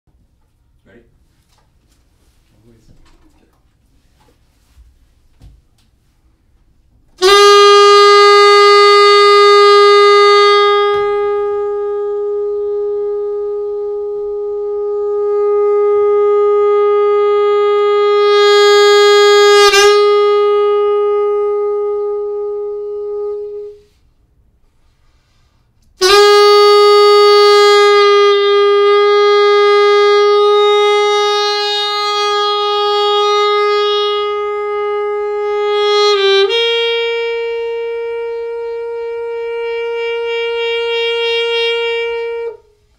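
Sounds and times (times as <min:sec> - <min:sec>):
saxophone holding long note: 0:07.1 - 0:42.9.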